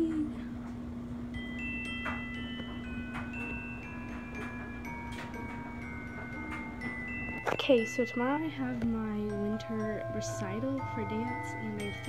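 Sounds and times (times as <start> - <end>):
steady low hum: 0.0 - 12.0
wind chimes ringing: 1.3 - 12.0.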